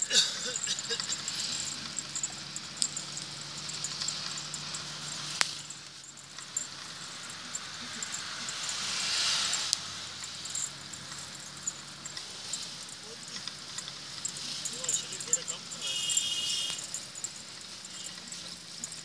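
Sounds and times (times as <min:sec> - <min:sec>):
engine hum: 0:00.0 - 0:19.0
wind and tyre hiss: 0:00.0 - 0:19.0.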